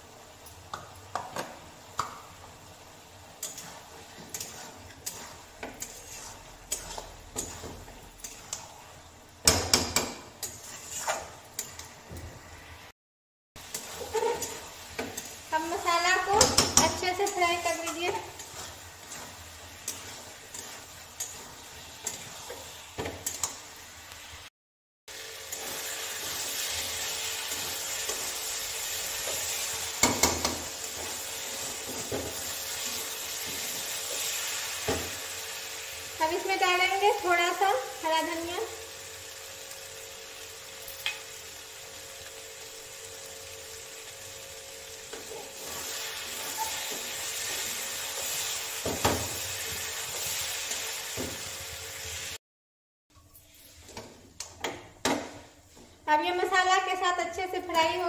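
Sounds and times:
masala sizzling: 0.0s - 13.0s, 13.6s - 24.5s, 25.1s - 52.4s
spatula scraping metal pan: 3.4s - 9.0s, 9.8s - 11.9s, 13.7s - 23.5s.

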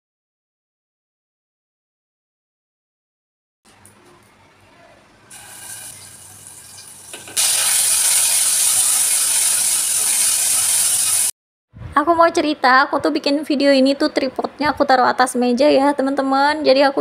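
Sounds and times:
spice paste sizzling in oil: 5.3s - 11.3s.

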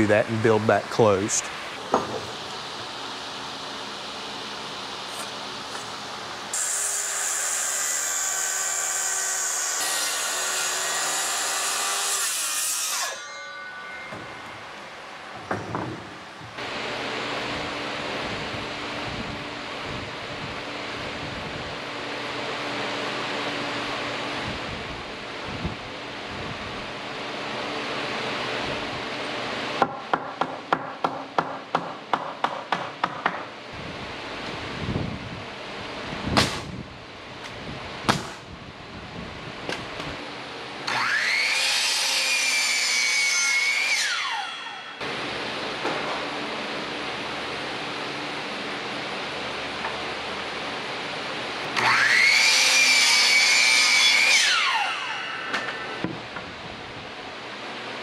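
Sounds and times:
pneumatic nailer firing: 36.3s - 36.8s, 38.1s - 38.4s.

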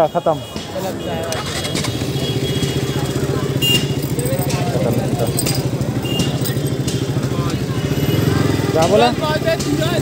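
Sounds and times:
motorcycle engine idling: 1.0s - 10.0s.

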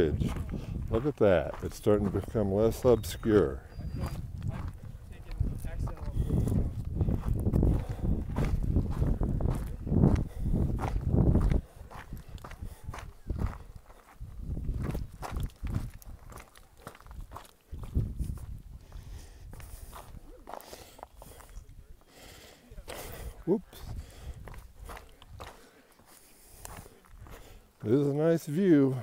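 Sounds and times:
footsteps on gravelly trail: 0.0s - 29.0s
low rumble on microphone: 3.8s - 13.6s.

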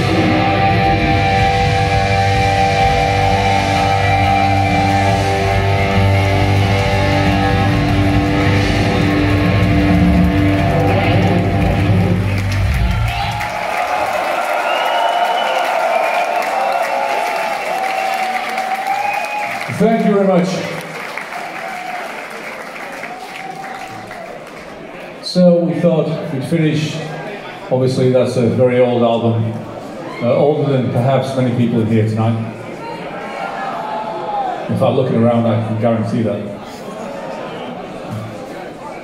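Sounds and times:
heavy metal band chord: 0.0s - 12.8s
crowd cheering and clapping: 0.0s - 25.2s, 32.7s - 34.7s.

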